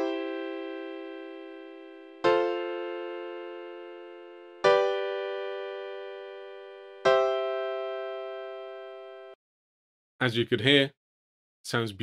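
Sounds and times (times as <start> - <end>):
piano chords: 0.0 - 9.4.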